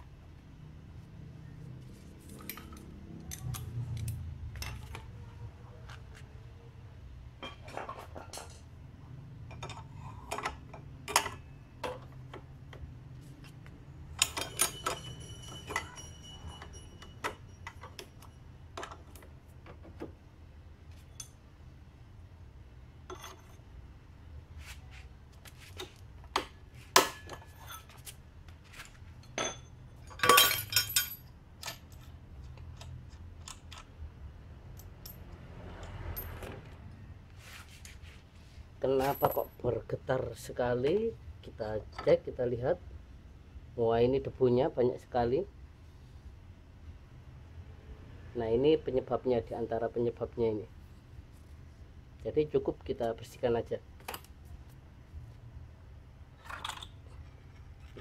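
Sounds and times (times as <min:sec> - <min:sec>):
metal tools clinking: 0:01.9 - 0:05.1, 0:14.0 - 0:19.2, 0:23.1 - 0:23.7, 0:26.9 - 0:28.1, 0:28.7 - 0:33.9, 0:39.0 - 0:39.6
metal part ringing: 0:14.1 - 0:18.8, 0:29.2 - 0:32.0.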